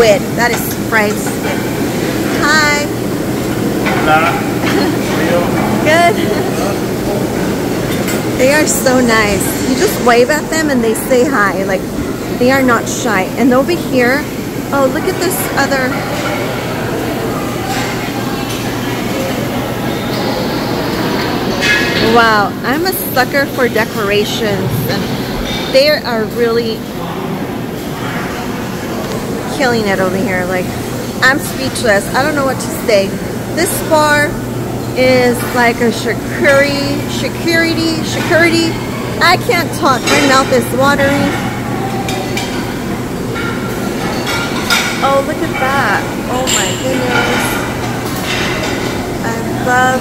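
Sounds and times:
dishes and utensils clinking: 0.0s - 11.8s, 12.5s - 26.4s, 27.8s - 50.0s
hubbub of diners: 0.0s - 50.0s
indistinct voices: 0.0s - 50.0s.

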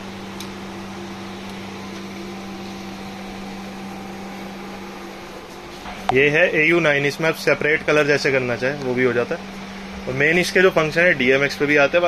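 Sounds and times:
machine hum with hiss: 0.0s - 12.0s.

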